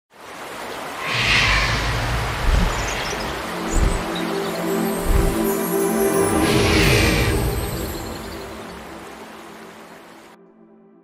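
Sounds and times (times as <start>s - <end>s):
whoosh sound effect: 1.0s - 4.2s
music: 3.3s - 11.0s.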